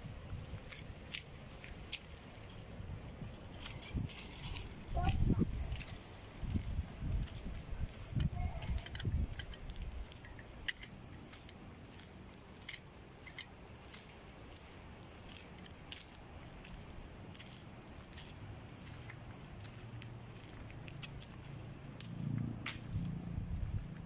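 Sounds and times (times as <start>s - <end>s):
wind buffeting microphone: 0.0s - 12.0s, 22.6s - 24.0s
faint outdoor hush: 0.0s - 24.0s.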